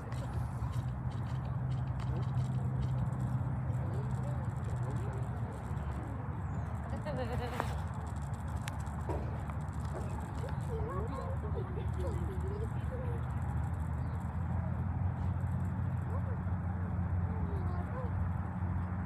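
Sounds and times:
distant voices calling: 0.0 - 19.0
steady low rumble: 0.0 - 19.0.

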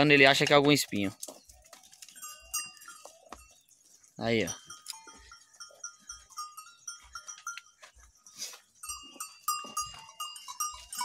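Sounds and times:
goat bells clinking: 0.0 - 11.0
soft footsteps: 0.2 - 11.0.

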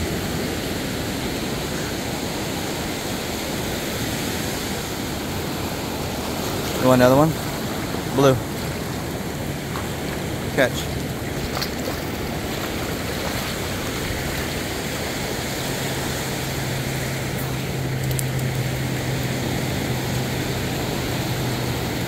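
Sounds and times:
ocean surf washing in: 0.0 - 22.0
low hum: 4.8 - 22.0.

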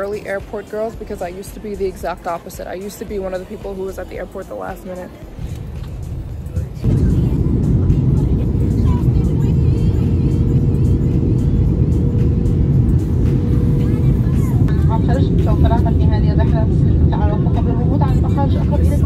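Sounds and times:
jet engine and airflow roar: 0.0 - 19.0.

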